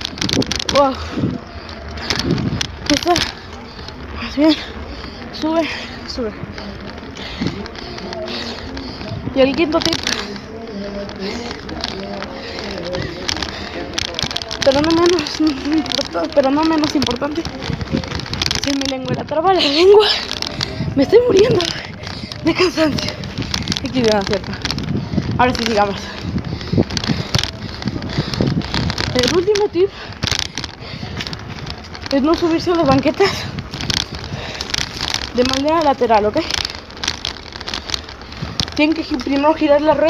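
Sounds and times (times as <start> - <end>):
bicycle rattling and clicking: 0.0 - 40.0
wind buffeting microphone: 0.0 - 40.0.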